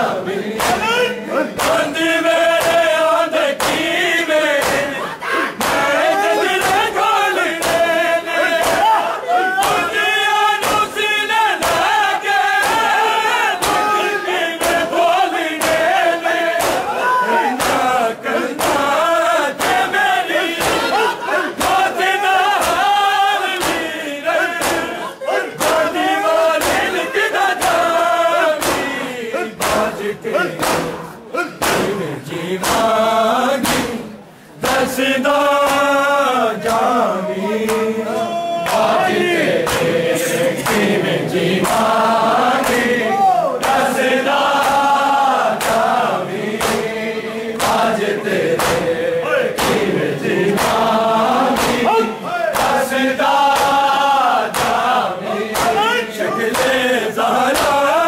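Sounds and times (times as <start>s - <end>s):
crowd of men chanting: 0.0s - 58.0s
hands striking chests: 26.6s - 26.9s, 28.6s - 29.0s, 30.6s - 31.0s, 31.6s - 32.0s, 33.6s - 34.0s, 49.6s - 49.9s.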